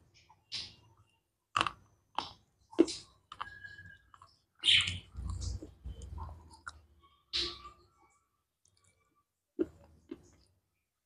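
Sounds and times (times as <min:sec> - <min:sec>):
mouth crunching wafer: 0:01.5 - 0:04.4.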